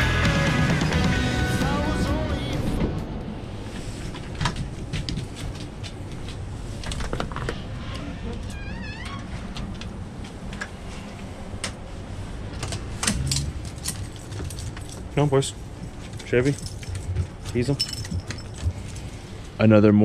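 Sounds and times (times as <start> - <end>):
storm door clattering open: 12.5 - 15.1.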